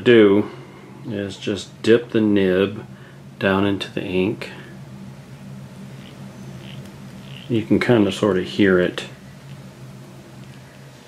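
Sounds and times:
steady low hum: 0.0s - 11.0s
fountain pen sucking ink: 5.9s - 7.6s.

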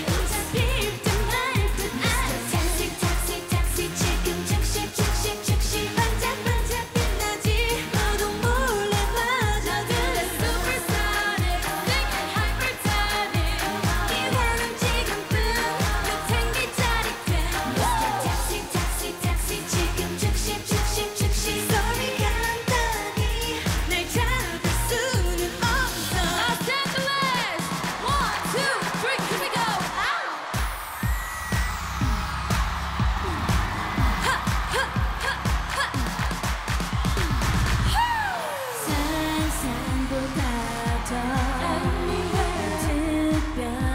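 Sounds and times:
backing track dance beat: 0.0s - 43.9s
group singing pop song: 0.0s - 43.9s.

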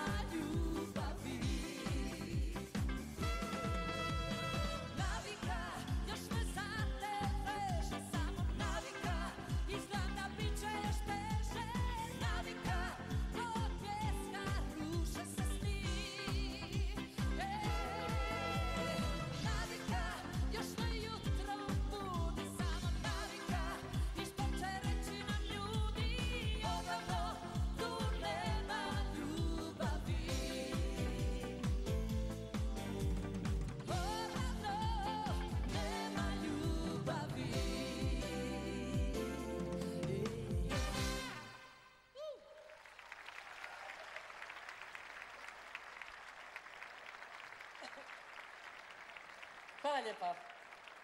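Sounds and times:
woman singing with vibrato: 0.0s - 32.2s, 33.8s - 41.6s
band playing: 0.0s - 41.8s
kick drum beat: 19.5s - 36.9s.

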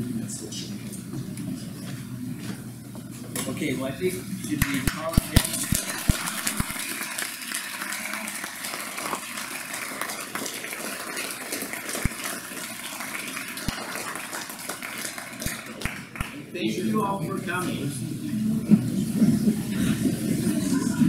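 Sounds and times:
audience applauding: 4.7s - 16.4s.

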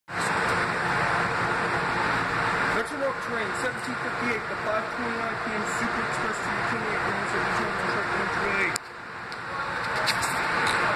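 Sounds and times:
steady station hum: 0.1s - 10.9s.

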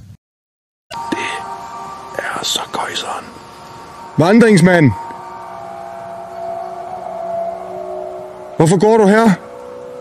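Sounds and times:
droning hum with held tones: 0.9s - 10.0s.

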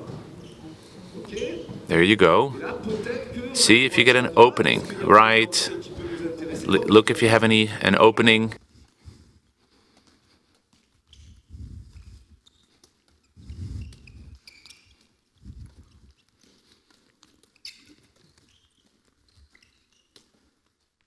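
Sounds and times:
shoe squeaks on sports floor: 0.0s - 1.8s, 11.0s - 15.3s, 17.2s - 20.6s.

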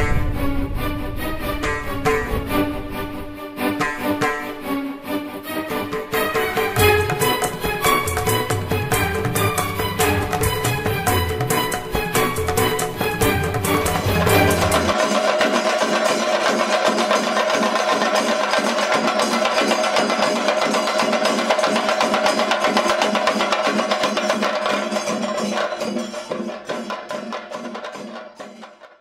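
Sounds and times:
fast drums: 5.7s - 29.0s.

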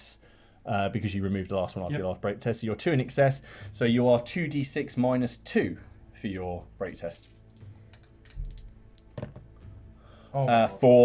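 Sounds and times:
dice rolling in a tray: 7.0s - 9.4s.

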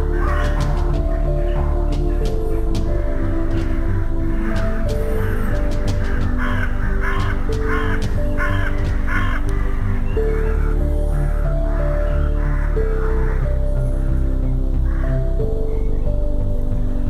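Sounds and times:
ambient music of held notes: 0.0s - 17.0s
small birds chirping: 0.0s - 17.0s
crow cawing: 0.1s - 14.1s.

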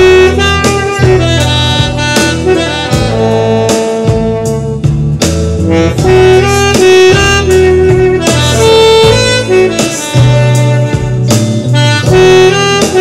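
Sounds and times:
alto saxophone melody: 0.0s - 13.0s
backing track bass and drums: 0.0s - 13.0s.

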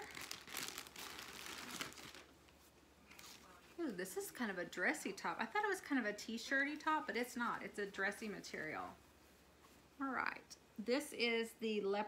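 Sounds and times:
plastic packaging crinkling: 0.0s - 3.6s.

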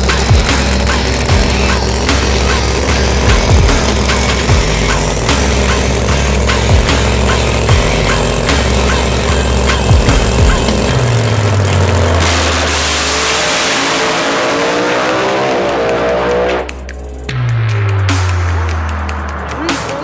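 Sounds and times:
background music with steady beat: 0.0s - 20.0s
drag car engine at full throttle: 0.0s - 20.0s.

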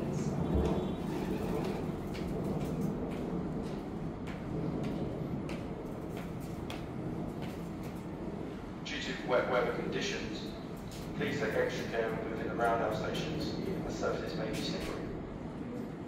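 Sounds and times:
electric train rumble: 0.0s - 16.0s.

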